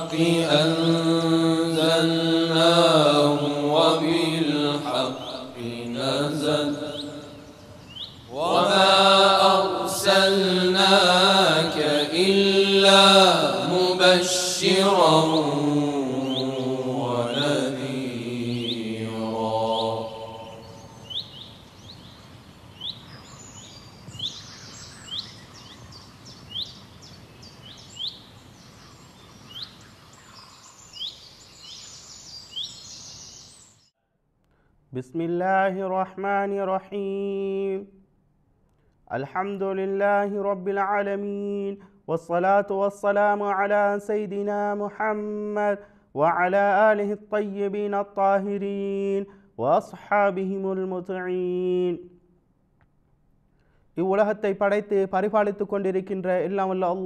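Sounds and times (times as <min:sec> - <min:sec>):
man chanting melodically: 0:00.0 - 0:07.5, 0:08.3 - 0:21.0, 0:35.0 - 0:37.9, 0:39.1 - 0:52.1, 0:54.0 - 0:57.0
short bird chirps: 0:06.8 - 0:08.3, 0:19.7 - 0:33.9.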